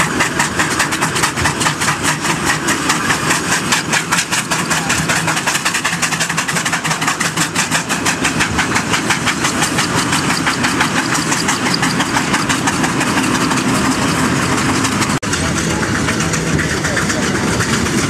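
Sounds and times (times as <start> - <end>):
steam locomotive exhaust chuffing: 0.0 - 18.0.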